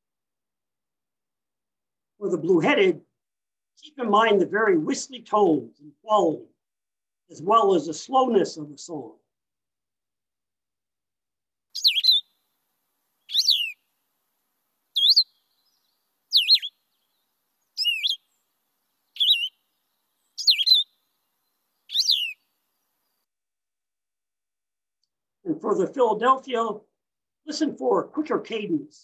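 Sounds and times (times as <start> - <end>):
bird whistling song: 11.8 - 12.4, 13.2 - 13.8, 15.0 - 18.4, 19.1 - 19.6, 20.2 - 22.5.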